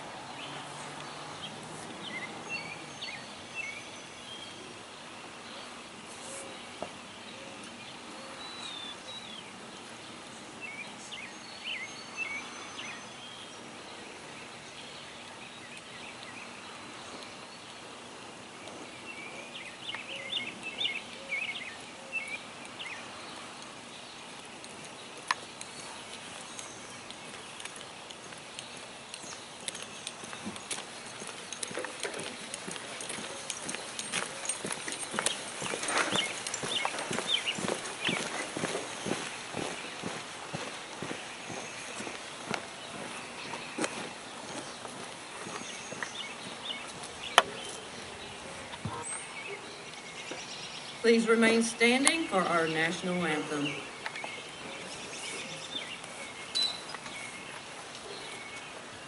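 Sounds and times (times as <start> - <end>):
birds chirping: 0.0 - 59.0
marching footsteps on pavement: 22.5 - 59.0.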